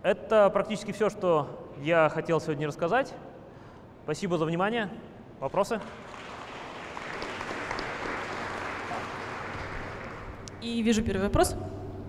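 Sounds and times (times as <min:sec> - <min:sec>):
audience applauding: 0:05.9 - 0:10.5.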